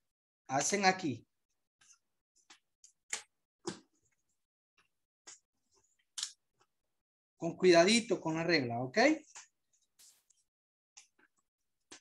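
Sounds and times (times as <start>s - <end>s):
paper rustling: 9.4s - 10.4s.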